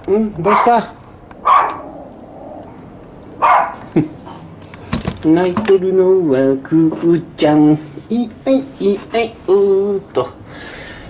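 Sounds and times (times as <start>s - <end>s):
dog barking: 0.5s - 1.9s, 3.4s - 3.8s.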